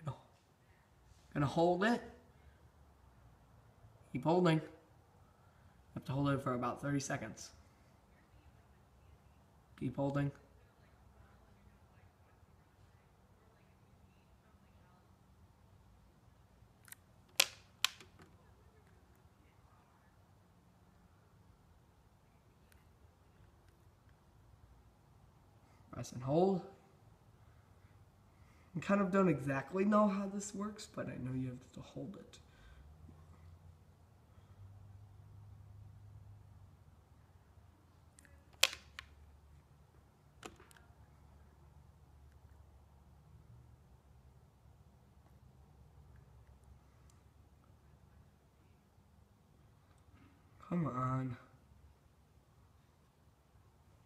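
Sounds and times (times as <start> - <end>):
faint low hum: 0.0 - 54.0
remote button plastic clicks: 16.9 - 18.4, 38.5 - 39.2, 40.4 - 40.8
remote button clicks: 38.5 - 39.1.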